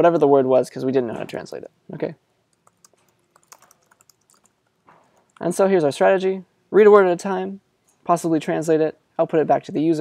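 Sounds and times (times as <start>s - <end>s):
faint keyboard typing: 2.5s - 5.6s.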